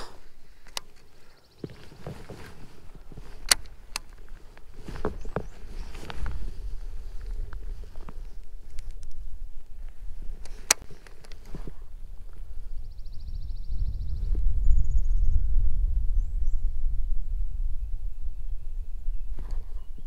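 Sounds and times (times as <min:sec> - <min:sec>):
wind rumbling on microphone: 0:00.0 - 0:20.0
handling clicks: 0:03.4 - 0:04.7.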